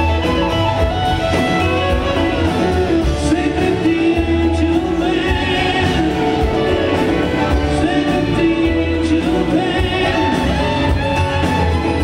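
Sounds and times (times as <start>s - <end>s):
string band with drums: 0.0s - 12.0s.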